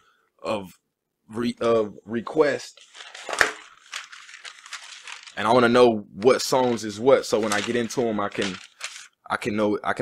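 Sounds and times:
crackly rustling on microphone: 0:02.7 - 0:09.1.

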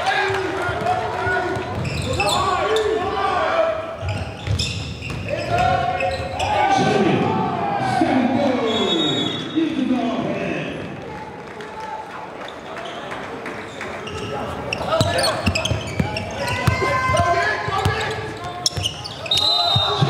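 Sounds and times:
people calling out: 0:14.4 - 0:20.0.

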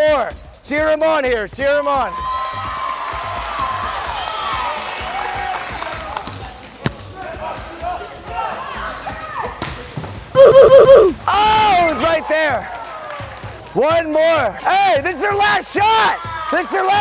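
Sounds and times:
hand spiking a volleyball: 0:06.8 - 0:07.2.

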